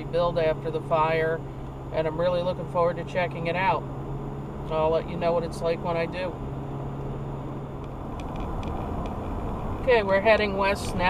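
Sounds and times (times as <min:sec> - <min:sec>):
low hum: 0:00.0 - 0:11.0
road and engine rumble in car: 0:00.0 - 0:11.0.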